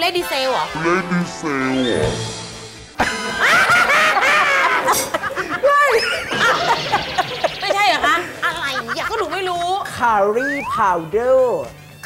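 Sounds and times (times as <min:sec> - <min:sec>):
man laughing: 0:03.0 - 0:07.4.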